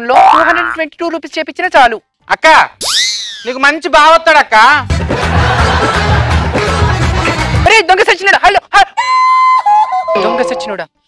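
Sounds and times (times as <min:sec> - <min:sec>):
person speaking: 0:00.0 - 0:02.8, 0:10.1 - 0:11.0
shrill high-pitched tone: 0:09.0 - 0:10.8.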